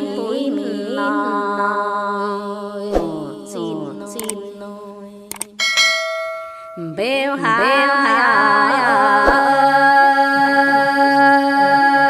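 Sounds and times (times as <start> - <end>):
woman singing: 0.0 - 5.4, 6.8 - 12.0
bell-like chime ringing: 5.6 - 7.1.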